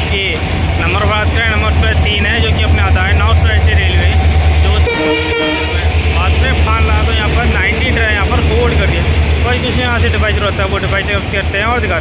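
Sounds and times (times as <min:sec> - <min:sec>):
low rumble: 0:00.2 - 0:12.0
train horn blast: 0:04.8 - 0:06.0.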